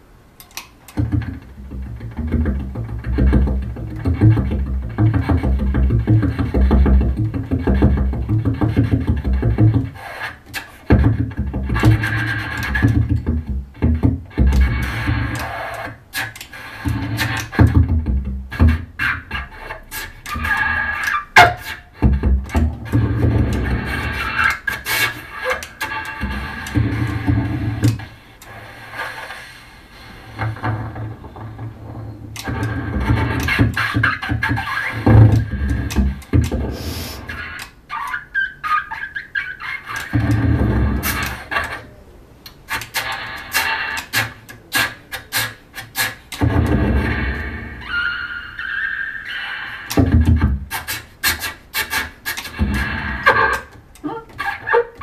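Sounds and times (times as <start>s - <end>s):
noisy clicks and rasping: 0.0s - 55.0s
bassoon improvisation: 1.0s - 15.5s, 16.1s - 28.0s.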